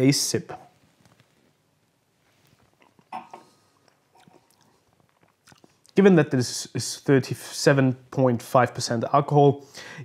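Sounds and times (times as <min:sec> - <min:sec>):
lip and tongue clicks: 0:03.8 - 0:06.0.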